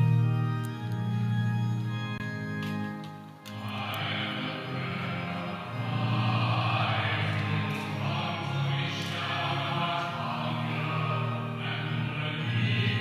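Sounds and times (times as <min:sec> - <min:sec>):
organ notes: 0:00.0 - 0:13.0
congregation singing a hymn: 0:03.5 - 0:13.0.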